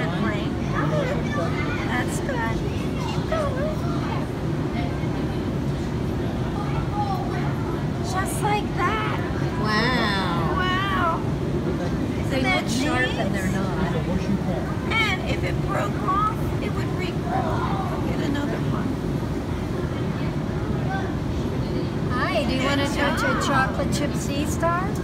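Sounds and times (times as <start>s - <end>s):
low background rumble: 0.0s - 25.0s.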